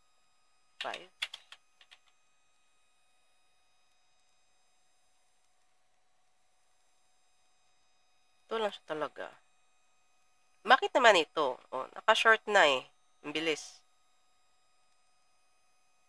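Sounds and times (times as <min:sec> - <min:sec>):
computer keyboard keystrokes: 0:00.8 - 0:02.2.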